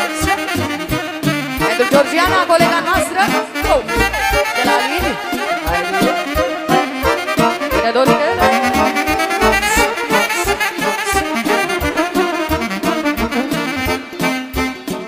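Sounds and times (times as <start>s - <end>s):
live band playing party music: 0.0s - 15.0s
wind instrument melody: 0.0s - 15.0s.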